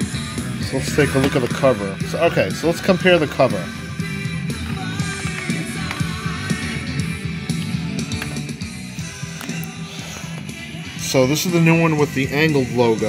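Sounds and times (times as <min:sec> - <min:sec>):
hard rock song: 0:00.0 - 0:13.0.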